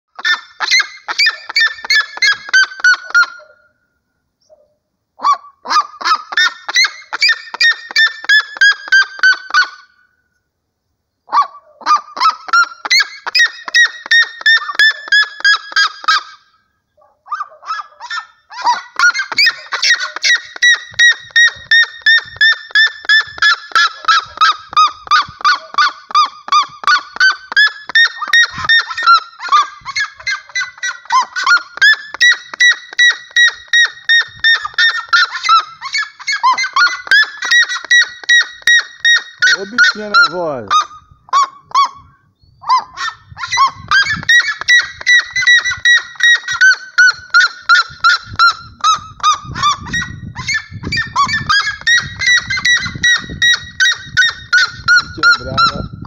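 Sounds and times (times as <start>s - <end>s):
bird calling with rapid yelps: 0.1s - 3.8s, 4.4s - 10.1s, 11.2s - 56.0s.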